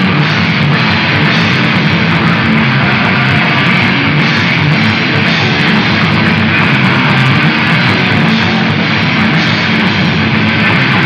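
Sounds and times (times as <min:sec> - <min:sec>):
grunge rock band playing live: 0:00.0 - 0:11.0.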